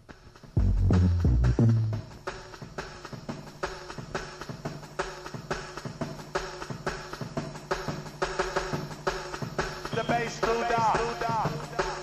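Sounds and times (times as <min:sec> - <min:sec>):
fast chopped breakbeat drums: 0:00.0 - 0:12.0
steady held bass note: 0:00.6 - 0:02.2.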